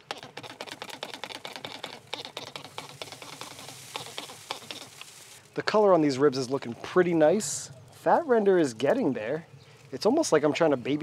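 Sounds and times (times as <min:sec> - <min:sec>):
meat crackling and sizzling: 0:02.0 - 0:05.6.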